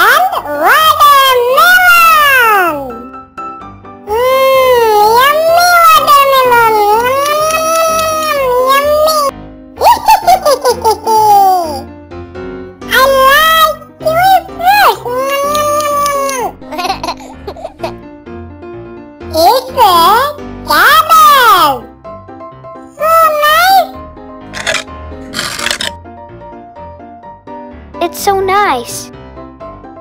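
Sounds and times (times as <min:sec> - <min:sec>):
soft background music: 0:00.0 - 0:30.0
high-pitched cartoon giggle: 0:09.8 - 0:11.8, 0:16.0 - 0:18.0
velcro ripping: 0:24.5 - 0:26.0.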